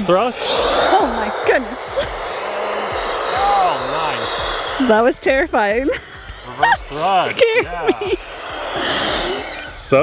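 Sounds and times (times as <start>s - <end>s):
electric ducted fan whining: 0.0s - 10.0s.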